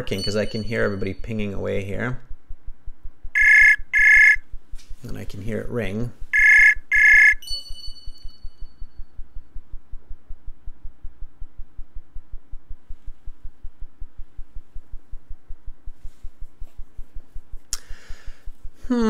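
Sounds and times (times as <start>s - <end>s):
electronic ringtone: 0.0s - 1.3s, 3.4s - 4.4s, 6.4s - 8.9s
higher electronic tones: 0.0s - 1.7s, 3.3s - 4.5s, 6.3s - 9.1s
rapid low pulsing clicks: 0.0s - 17.7s.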